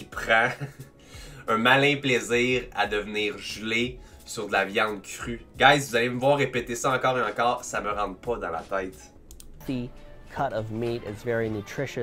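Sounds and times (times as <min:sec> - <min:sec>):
man talking: 0:00.0 - 0:00.8, 0:01.4 - 0:12.0
background music: 0:00.0 - 0:12.0
light clicks: 0:09.2 - 0:09.5.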